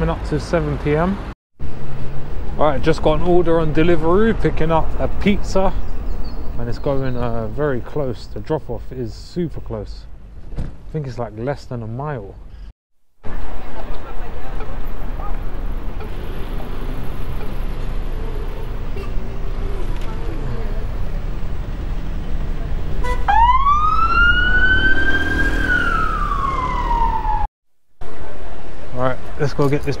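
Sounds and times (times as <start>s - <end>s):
traffic rumble: 0.0s - 30.0s
wind: 0.0s - 30.0s
emergency siren wailing: 22.9s - 27.5s.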